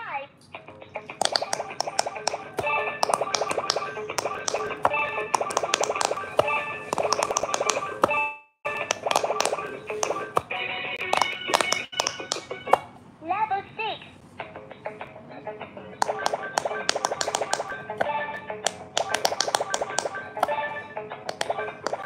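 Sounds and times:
quick clicks of pressed bubbles: 1.2s - 7.9s, 8.8s - 10.3s, 11.0s - 12.8s, 16.0s - 17.7s, 18.7s - 20.6s.

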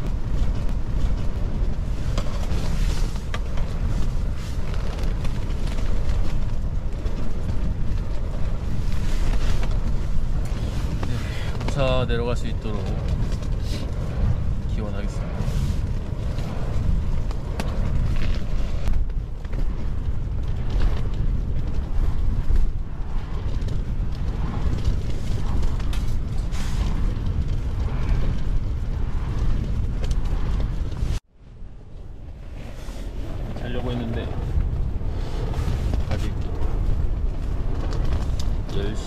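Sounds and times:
wind buffeting a tent: 0.0s - 39.0s.

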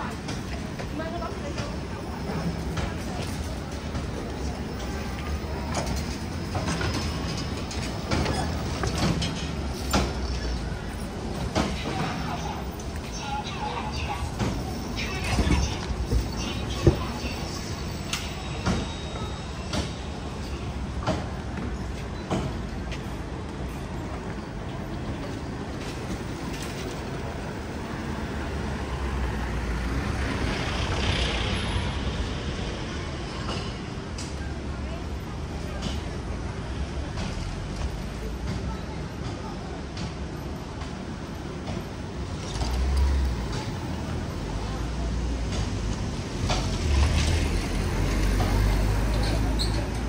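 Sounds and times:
street traffic rumble: 0.0s - 50.0s.

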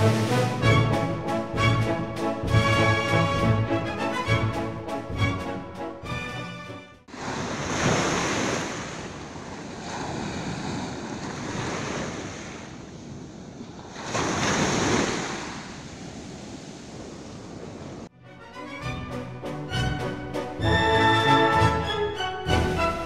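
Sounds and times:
waves breaking on beach: 7.1s - 18.1s.

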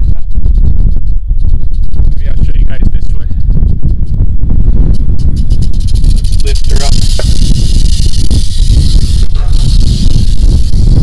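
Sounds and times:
rattlesnake rattling: 0.0s - 11.0s
wind noise on microphone: 0.0s - 11.0s.

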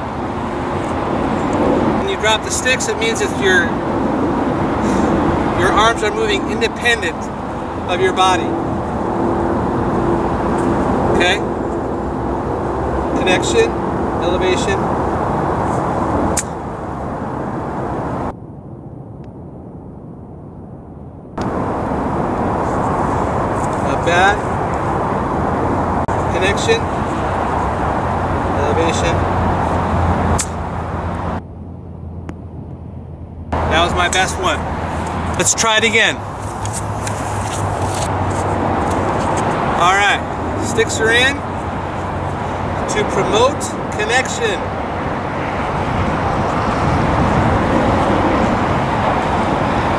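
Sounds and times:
outdoor background rumble: 0.0s - 49.9s.

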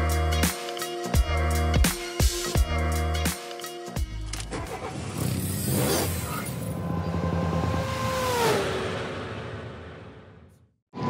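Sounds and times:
beat-driven vlog music: 0.0s - 4.7s
engine-like hum: 4.4s - 11.0s
rising whoosh: 5.7s - 11.0s.

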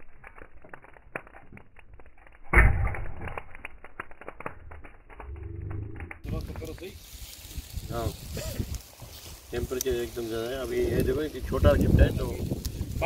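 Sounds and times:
charcoal crackling: 0.0s - 13.0s.

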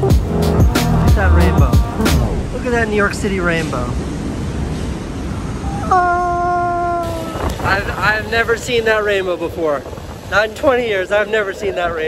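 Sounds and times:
city street traffic: 0.0s - 12.0s
person howling a long note: 5.6s - 7.5s.

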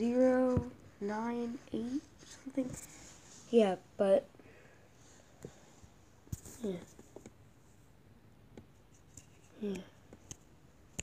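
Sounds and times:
faint clicks and scratches: 0.0s - 3.7s, 6.3s - 7.4s, 8.6s - 11.0s.

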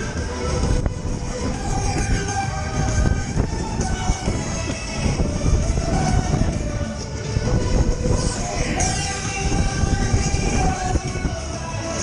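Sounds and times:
fairground music: 0.0s - 12.0s
spinning ride rumble: 0.0s - 12.0s
wind on microphone: 0.0s - 12.0s.

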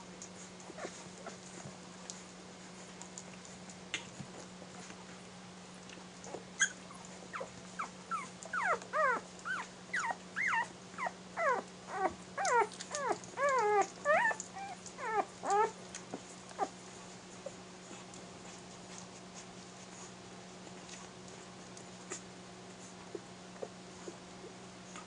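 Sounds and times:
puppies squeaking and whimpering: 6.6s - 15.8s.

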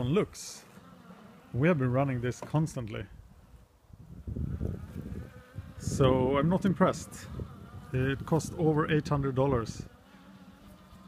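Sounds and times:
lawnmower electric motor buzzing: 0.0s - 11.0s.

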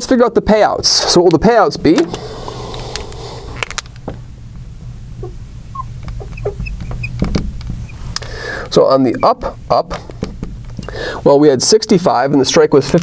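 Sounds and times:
steady low hum: 0.0s - 12.8s
marker squeaking on glass: 5.2s - 8.1s, 9.0s - 9.5s.

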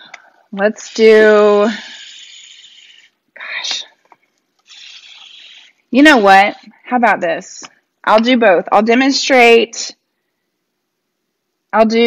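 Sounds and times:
woman's breathy whispered sounds: 0.0s - 4.0s, 4.6s - 6.5s
woman speaking: 0.6s - 1.9s, 5.9s - 10.0s, 11.8s - 12.0s.

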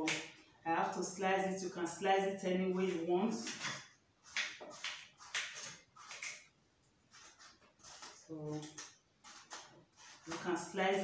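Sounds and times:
knife slicing cucumber: 2.8s - 6.5s, 7.1s - 11.0s.

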